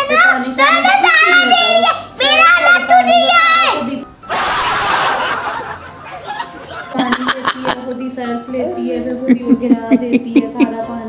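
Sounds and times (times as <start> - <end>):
people laughing: 4.3 - 8.1, 9.3 - 11.0.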